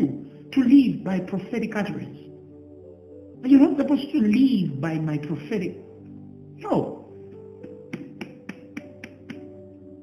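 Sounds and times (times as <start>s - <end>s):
light clicking beat: 7.6s - 9.6s.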